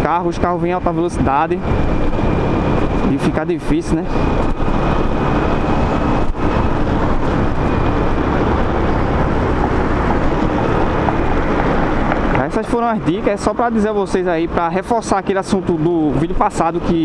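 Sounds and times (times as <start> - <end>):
motorcycle riding: 0.0 - 17.0
wind on microphone: 1.2 - 12.6.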